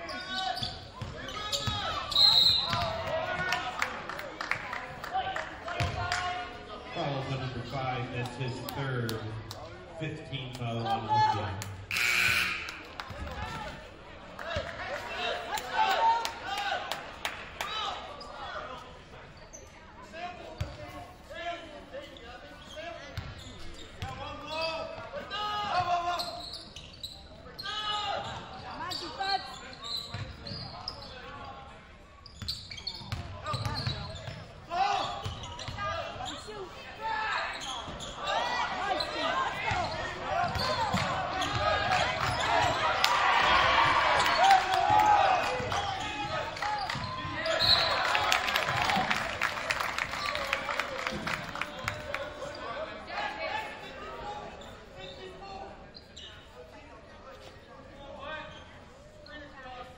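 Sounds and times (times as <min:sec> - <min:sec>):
hubbub of voices and shouts: 0:00.0 - 0:59.9.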